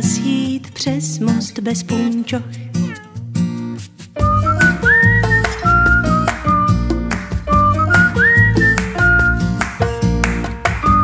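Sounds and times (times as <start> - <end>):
guitar accompaniment: 0.0 - 11.0
whistled melody: 4.2 - 9.9, 10.7 - 11.0.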